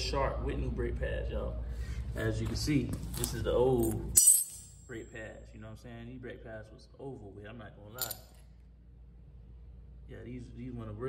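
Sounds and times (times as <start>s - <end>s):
faint steady low hum: 0.0s - 11.0s
short clink: 3.8s - 4.9s, 8.0s - 8.4s.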